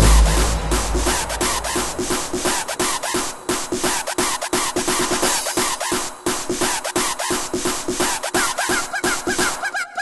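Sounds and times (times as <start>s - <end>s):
fast electronic percussion: 0.0s - 9.7s.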